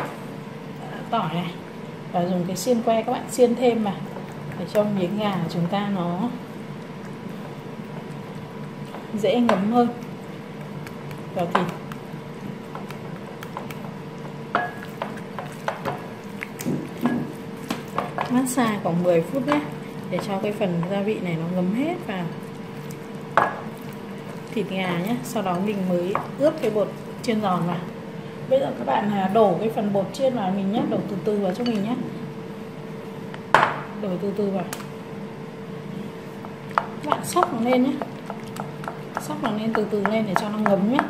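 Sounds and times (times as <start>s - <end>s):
faint steady hum: 0.0s - 41.0s
hands squishing raw chicken: 4.1s - 21.1s, 22.0s - 27.3s.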